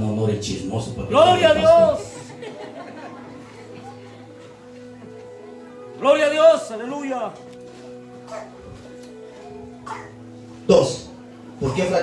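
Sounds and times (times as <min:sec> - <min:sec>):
soft keyboard music: 0:00.0 - 0:12.0.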